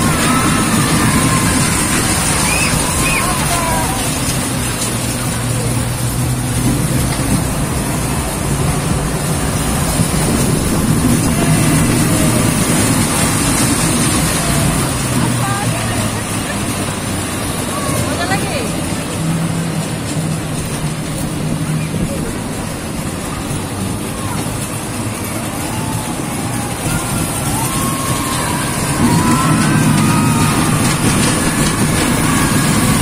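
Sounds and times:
faint riders' voices: 0.0s - 33.0s
roller coaster wheels rumbling on rails: 0.0s - 33.0s.

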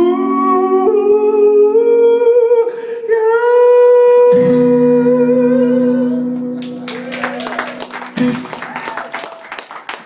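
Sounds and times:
man singing long held notes: 0.0s - 6.6s.

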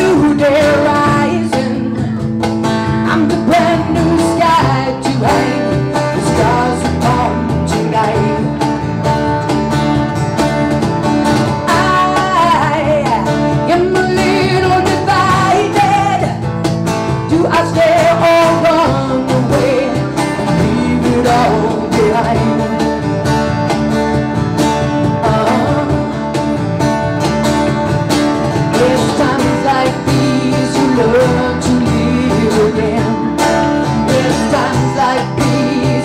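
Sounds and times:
woman singing into microphone: 0.0s - 8.7s, 11.6s - 16.5s, 17.3s - 23.1s, 25.0s - 26.2s, 28.6s - 36.0s
acoustic guitar: 0.0s - 36.0s
cajon drumming: 0.0s - 36.0s
electric bass guitar: 0.0s - 36.0s.

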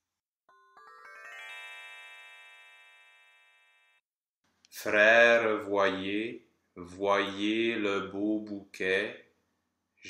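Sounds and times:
rising bell-like chime: 0.5s - 3.8s.

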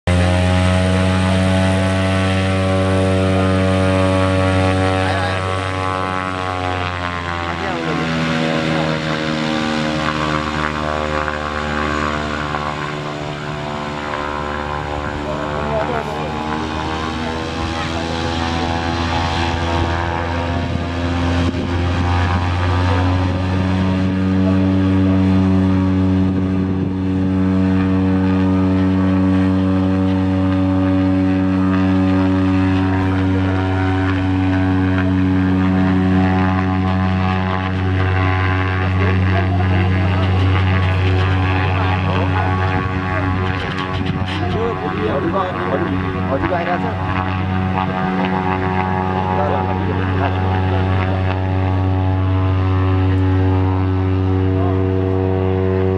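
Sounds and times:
turboprop plane engine droning: 0.0s - 55.9s.

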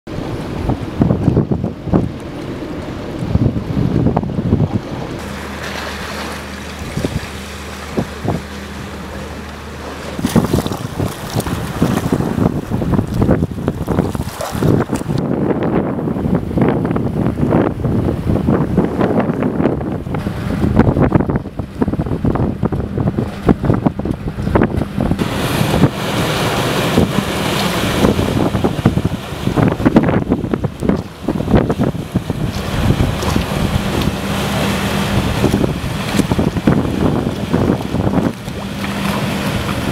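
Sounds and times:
water washing across landing: 0.1s - 39.9s
wind gusts buffeting microphone: 0.1s - 39.9s.

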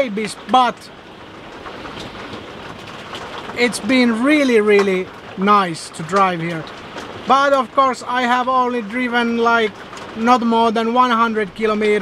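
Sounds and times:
rain drumming on vehicle roof: 0.0s - 12.0s
road noise: 0.0s - 12.0s.

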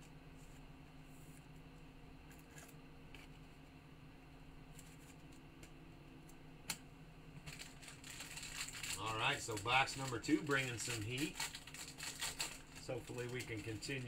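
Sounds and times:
rustling of cards and sleeves: 4.7s - 5.5s, 7.4s - 14.0s
foil pack crinkling: 7.4s - 14.0s.

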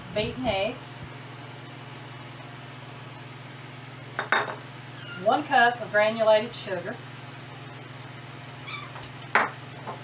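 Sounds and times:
ceramic bowl clinking: 4.2s - 4.6s.

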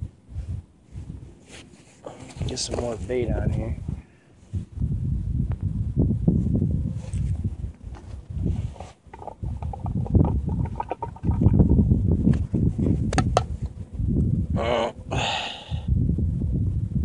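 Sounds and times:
low rumbling on microphone: 0.0s - 17.0s.

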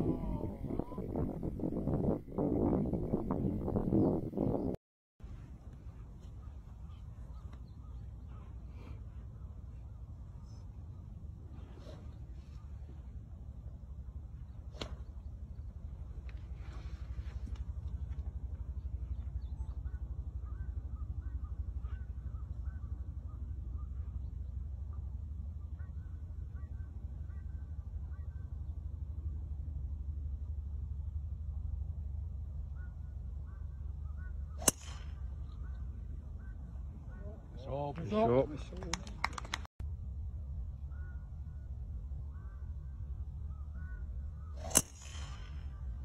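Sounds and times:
wind rumble on microphone: 0.0s - 28.7s
golf club striking ball: 14.7s - 15.1s, 34.6s - 35.3s, 44.6s - 45.8s.

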